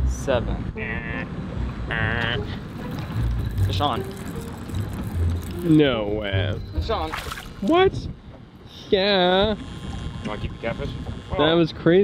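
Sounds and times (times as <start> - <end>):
wind buffeting microphone: 2.6 - 12.0.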